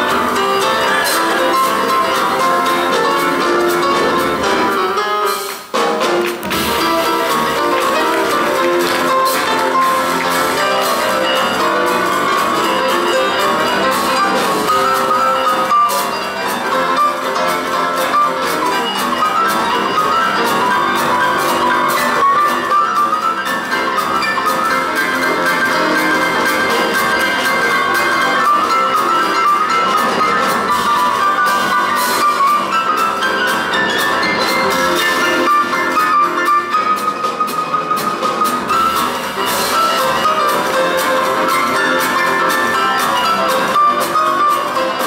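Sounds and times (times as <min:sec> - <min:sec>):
boogie-woogie piano duet: 0:00.0 - 0:45.0
drum kit: 0:00.0 - 0:45.0.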